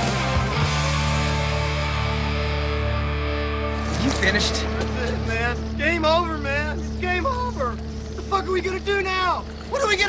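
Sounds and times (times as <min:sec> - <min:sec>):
sustained music drone: 0:00.0 - 0:10.0.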